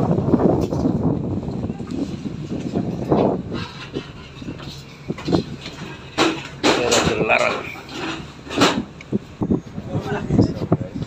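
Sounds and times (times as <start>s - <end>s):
rushing noise of moving ship: 0.0s - 11.0s
wind buffeting microphone: 0.0s - 11.0s.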